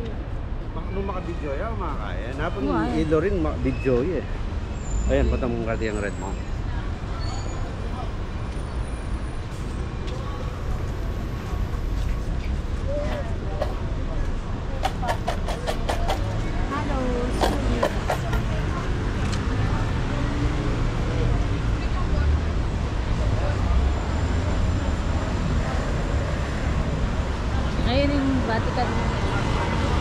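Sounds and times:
passers-by talking: 0.0s - 30.0s
road traffic rumble: 0.0s - 30.0s.

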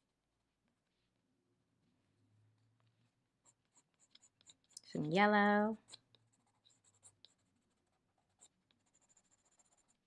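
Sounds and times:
pencil scratching on paper: 3.0s - 4.9s, 5.8s - 10.0s.

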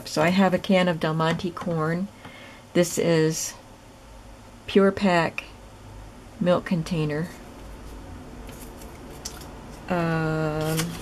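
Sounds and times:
paper handling: 7.6s - 11.0s.

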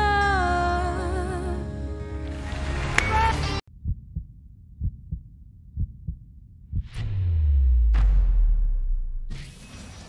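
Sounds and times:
music: 0.0s - 3.6s
heartbeat sound effect: 3.7s - 9.3s.

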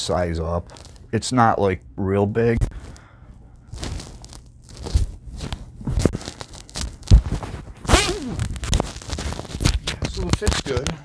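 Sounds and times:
fabric rustling: 3.7s - 9.8s.

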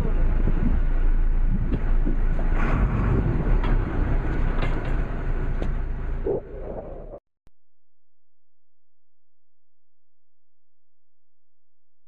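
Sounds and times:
boat engine rumbling: 0.0s - 7.2s.

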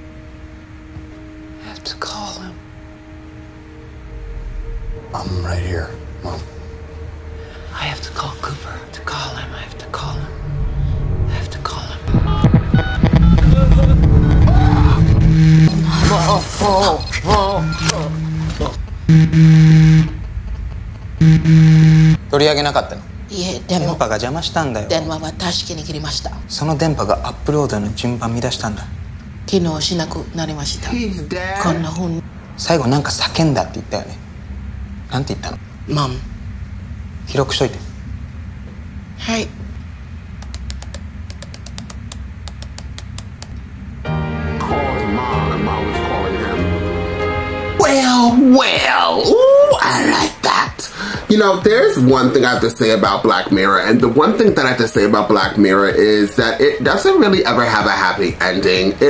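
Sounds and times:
high electronic whine: 0.0s - 24.4s
low steady hum: 0.0s - 59.0s
warbling pitched sound: 10.0s - 20.3s.

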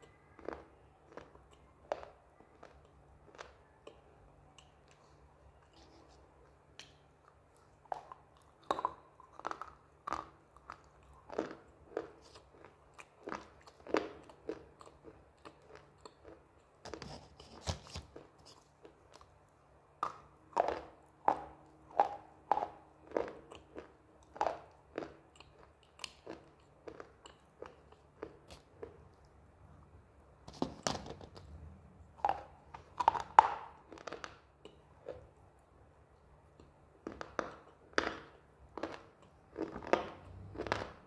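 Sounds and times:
crunchy chewing: 0.0s - 29.3s, 32.2s - 35.4s, 36.4s - 41.0s.

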